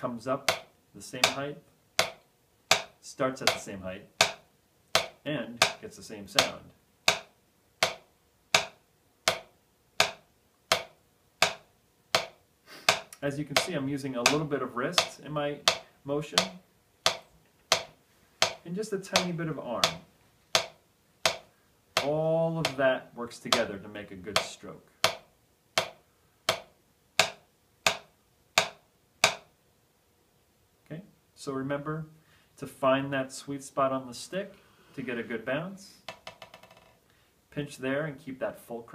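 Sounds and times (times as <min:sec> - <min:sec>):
drumsticks tapping practice pad: 0:00.0 - 0:29.6, 0:36.0 - 0:36.9.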